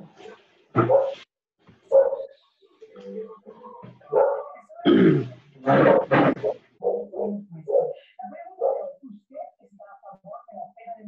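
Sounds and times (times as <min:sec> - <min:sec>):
dog barking: 0:00.8 - 0:01.2, 0:01.9 - 0:02.4, 0:04.1 - 0:04.6, 0:05.7 - 0:08.0, 0:08.6 - 0:09.0.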